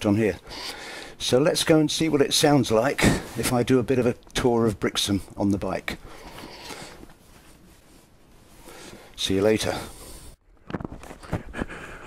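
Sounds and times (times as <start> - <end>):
clothing rustling on microphone: 1.7 - 11.8.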